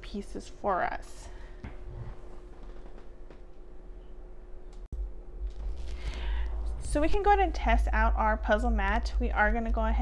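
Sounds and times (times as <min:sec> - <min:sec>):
faint steady hum: 0:00.0 - 0:10.0
low rumble: 0:05.0 - 0:10.0.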